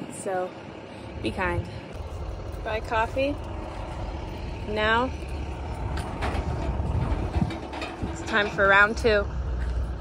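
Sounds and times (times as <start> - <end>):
low rumble: 0.9 - 10.0
shopping cart rattling on asphalt: 4.5 - 10.0.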